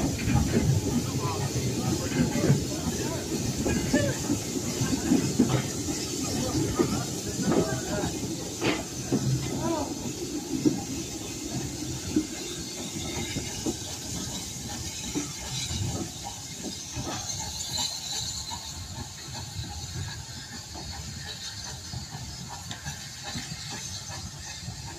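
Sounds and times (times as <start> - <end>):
steam hissing: 0.0 - 24.9
steam locomotive hauling train: 0.0 - 24.9
wagon wheels clanking on rails: 0.0 - 24.9.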